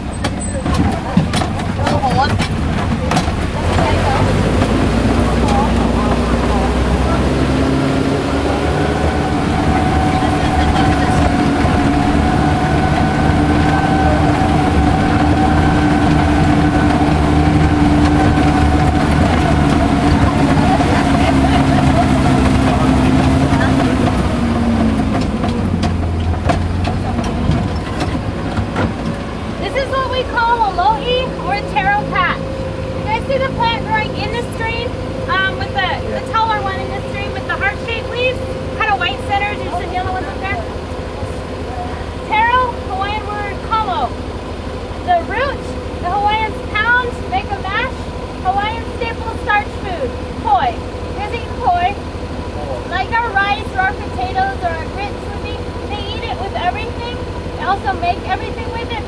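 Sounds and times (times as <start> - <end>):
knocks and rattles: 0.0 - 7.0, 9.2 - 29.8
vehicle engine on dirt track: 0.0 - 59.0.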